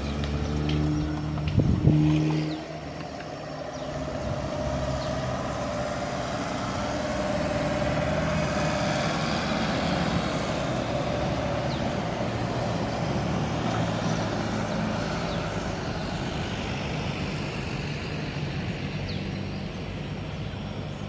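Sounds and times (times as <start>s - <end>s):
road traffic noise: 0.0s - 21.0s.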